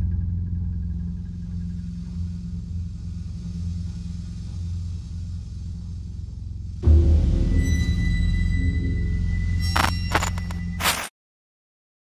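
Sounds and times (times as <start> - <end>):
low rumbling drone: 0.0 - 10.8.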